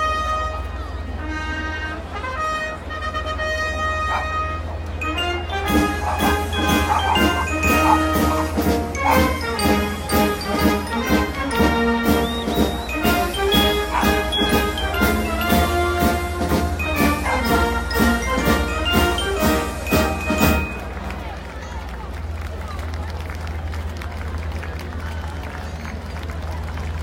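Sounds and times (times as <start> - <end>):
band playing a march: 0.0 - 21.4
outdoor crowd noise: 0.0 - 27.0
bright bell-like notes: 5.0 - 12.0, 12.6 - 21.1
steady drum beat: 5.6 - 20.8.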